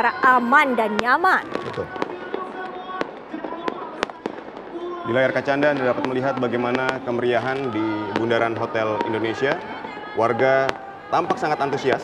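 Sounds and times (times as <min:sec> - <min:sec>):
fireworks bangs: 0:00.0 - 0:12.0.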